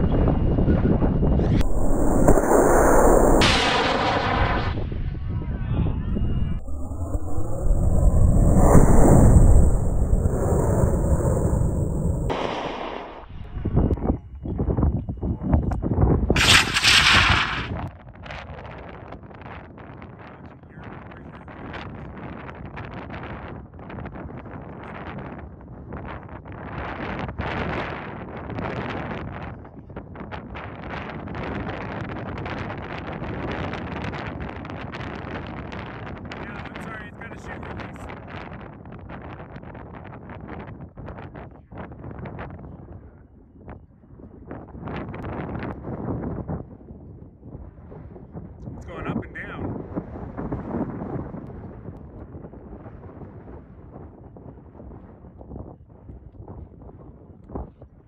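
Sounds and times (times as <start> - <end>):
wind buffeting microphone: 0.0 - 17.9
rocket motor roaring: 1.5 - 5.1, 6.1 - 14.0, 16.4 - 17.8
uneven loud bursts: 16.4 - 17.9.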